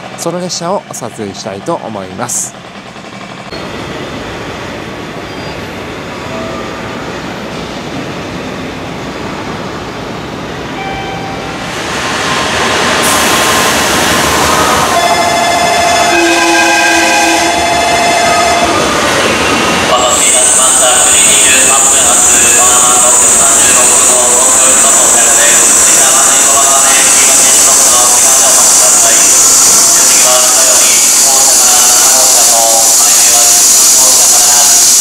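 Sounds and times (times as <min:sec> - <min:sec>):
station background noise: 0:00.0 - 0:35.0
train rushing: 0:00.0 - 0:35.0
train whining tones: 0:01.8 - 0:35.0.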